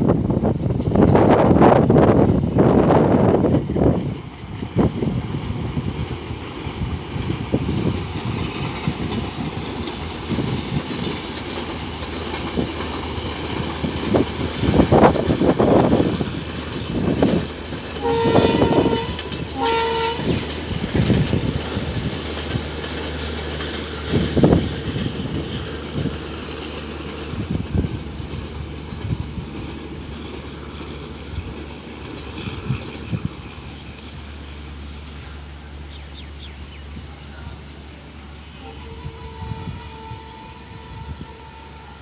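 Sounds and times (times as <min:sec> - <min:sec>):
train engine drone: 0:00.0 - 0:42.0
wheels clattering over rail joints: 0:03.4 - 0:37.8
train horn: 0:18.0 - 0:20.6, 0:38.4 - 0:42.0.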